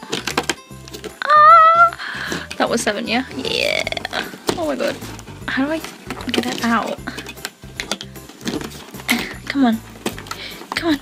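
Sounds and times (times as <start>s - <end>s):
background music with bass: 0.0s - 11.0s
card and foil clicks and rustles: 0.0s - 11.0s.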